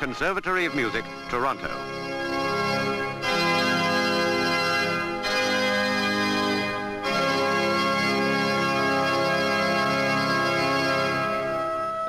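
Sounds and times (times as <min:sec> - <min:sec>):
pipe organ held chord: 0:00.0 - 0:12.0.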